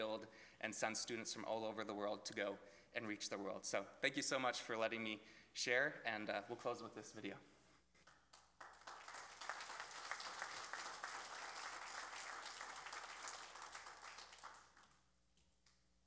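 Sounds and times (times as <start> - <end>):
faint applause: 8.6 - 15.0.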